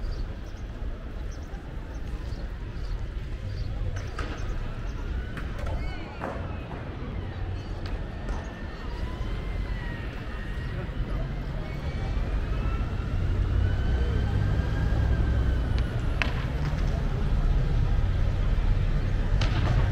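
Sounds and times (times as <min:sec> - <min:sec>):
traffic rumble: 0:00.0 - 0:19.9.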